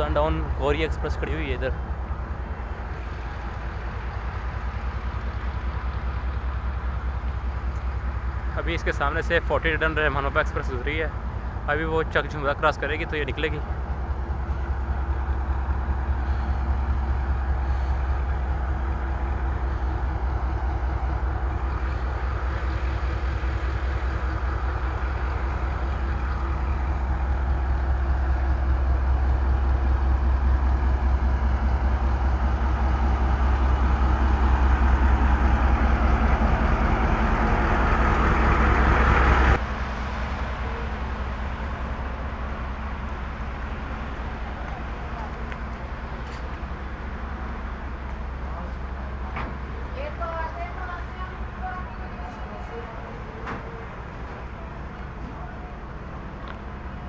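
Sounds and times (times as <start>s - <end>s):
diesel locomotive idling: 0.0s - 57.0s.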